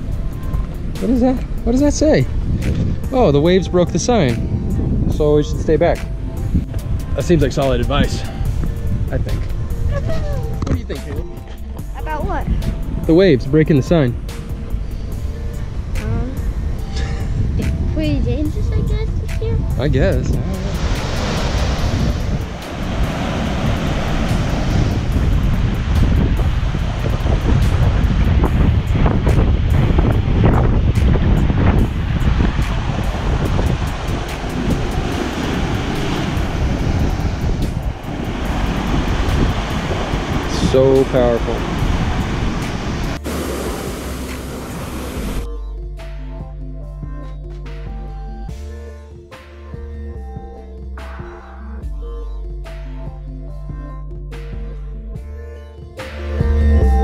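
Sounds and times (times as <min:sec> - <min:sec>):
wind on microphone: 0:00.0 - 0:45.5
background music: 0:00.0 - 0:57.0
ocean surf breaking over rocks: 0:20.6 - 0:45.5.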